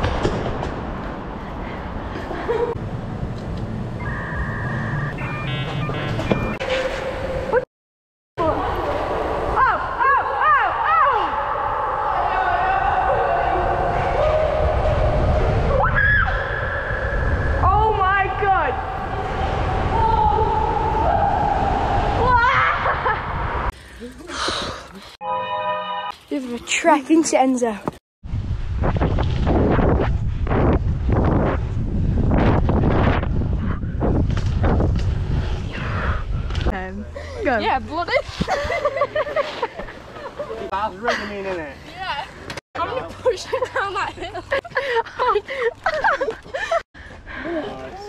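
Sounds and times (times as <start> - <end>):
high-pitched squeals: 4.0 - 7.6
bicycle rolling on concrete: 23.7 - 25.1.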